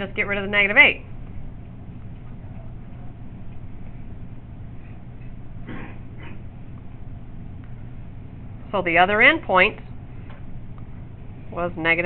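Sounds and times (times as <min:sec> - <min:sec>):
room noise hum and hiss: 0:00.0 - 0:12.0.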